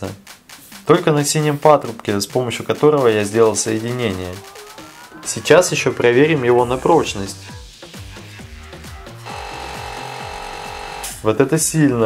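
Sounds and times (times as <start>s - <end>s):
background music with steady beat: 0.0s - 12.0s
air compressor humming: 8.6s - 11.2s.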